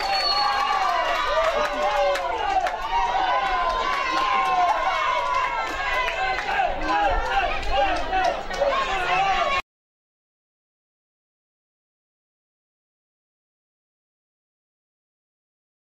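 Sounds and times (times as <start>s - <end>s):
crowd shouting and cheering: 0.0s - 9.6s.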